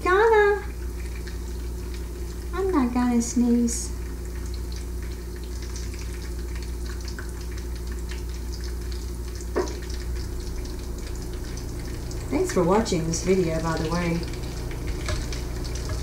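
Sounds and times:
bacon sizzling: 0.0 - 16.0.

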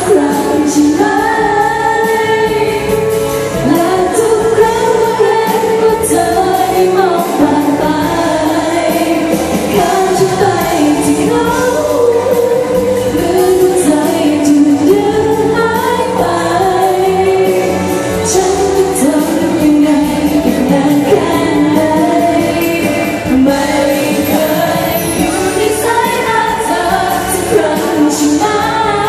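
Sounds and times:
musical accompaniment: 0.0 - 29.0
woman singing into a microphone: 0.0 - 29.0.

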